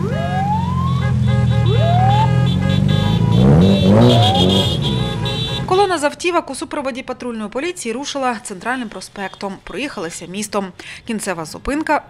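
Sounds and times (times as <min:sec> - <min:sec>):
police siren whoop: 0:00.0 - 0:04.8
engine revving: 0:00.0 - 0:05.8
car horns blasting: 0:00.0 - 0:06.0.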